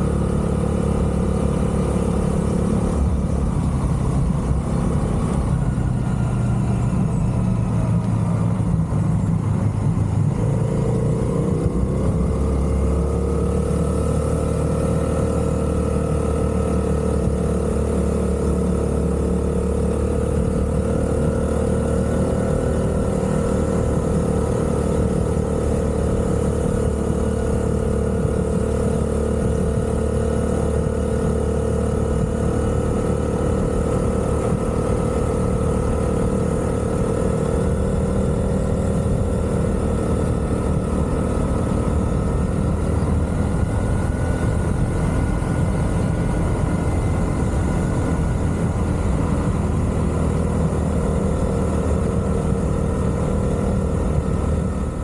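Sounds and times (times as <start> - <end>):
road and wind noise: 0.0 - 55.0
small motorbike engine running: 0.0 - 55.0.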